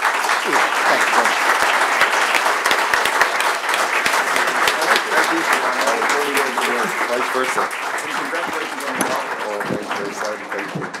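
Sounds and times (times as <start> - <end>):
audience applause: 0.0 - 11.0
people talking: 0.4 - 1.5, 4.3 - 11.0.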